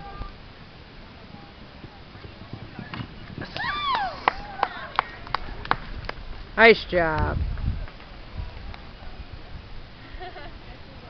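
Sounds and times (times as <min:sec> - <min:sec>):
horse hoofbeats on sand: 0:01.3 - 0:03.6.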